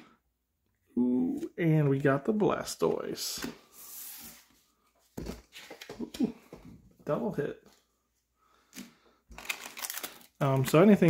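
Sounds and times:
soft brushing hiss of cards: 0:03.5 - 0:04.6.

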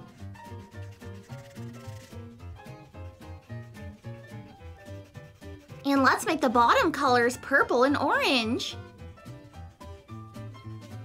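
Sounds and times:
background music with steady beat: 0:00.0 - 0:11.0
marker rubbing on paper: 0:00.0 - 0:11.0.

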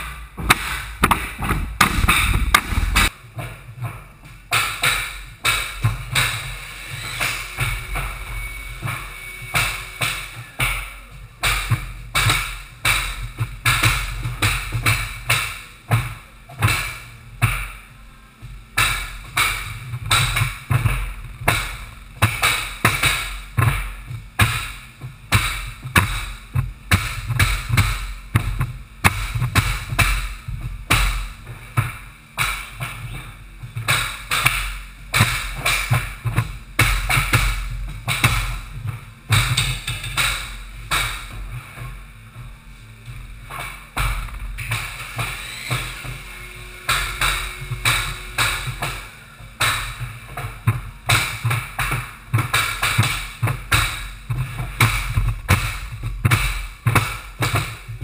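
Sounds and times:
mallets striking flooring nailers: 0:00.0 - 0:17.8, 0:18.8 - 0:41.9, 0:43.5 - 0:58.0
music: 0:03.2 - 0:58.0.

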